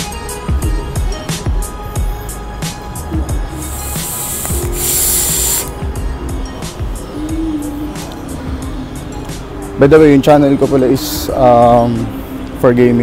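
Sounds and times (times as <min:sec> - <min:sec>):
background music: 0:00.0 - 0:13.0
loud hiss: 0:03.6 - 0:05.8.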